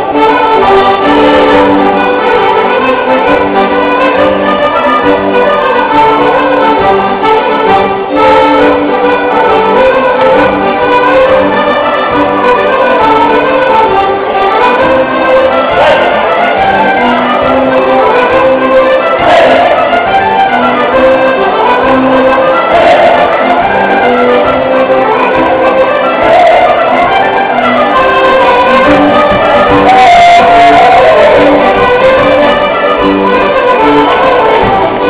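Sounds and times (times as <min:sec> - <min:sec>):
folk band playing dance tune: 0:00.0 - 0:35.0.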